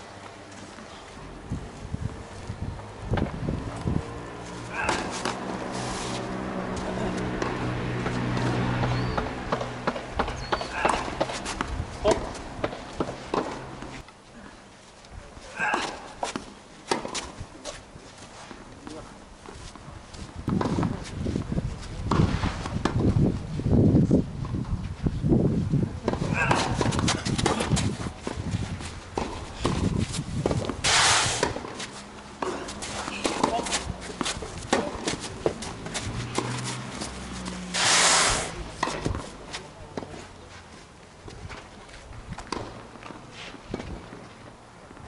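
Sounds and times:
shoes sliding on court: 4.4s - 9.6s, 19.4s - 22.9s, 26.0s - 44.4s
shoe scuffs on court: 4.6s - 6.8s, 15.5s - 23.0s, 26.0s - 44.0s
racket striking ball: 4.7s - 5.5s, 7.4s - 14.0s, 26.0s - 27.9s, 29.2s - 37.8s
running footsteps: 26.5s - 30.8s, 31.6s - 37.7s.

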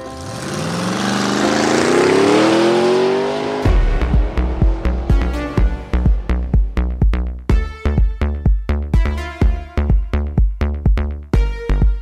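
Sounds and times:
car engine accelerating: 0.0s - 7.5s
electronic music with drum beat: 3.6s - 12.0s.

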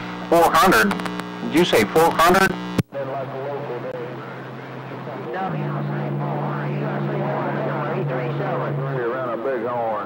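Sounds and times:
garbled radio voices: 0.0s - 10.0s
radio static: 0.0s - 10.0s
low hum: 4.1s - 10.0s.

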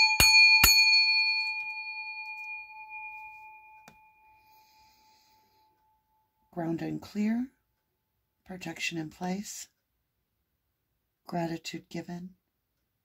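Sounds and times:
singing bowl struck and ringing: 0.0s - 6.3s.

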